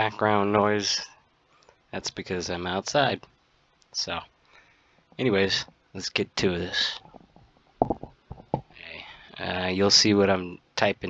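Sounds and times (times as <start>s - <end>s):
dull knocks: 7.8s - 8.7s.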